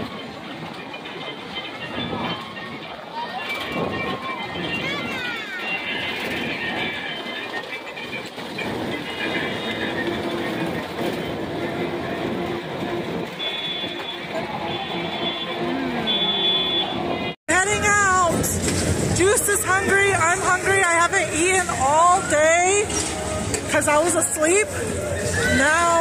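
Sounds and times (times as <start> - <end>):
crowd voices: 0.0 - 26.0
kiddie train ride rolling: 0.0 - 26.0.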